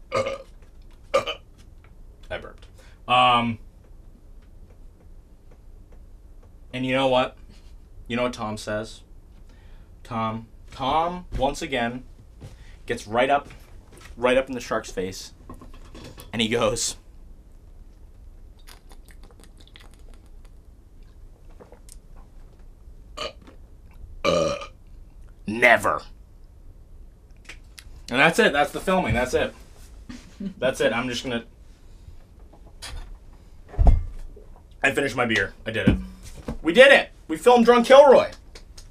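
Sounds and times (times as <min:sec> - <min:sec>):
room noise: 0:00.0 - 0:38.9.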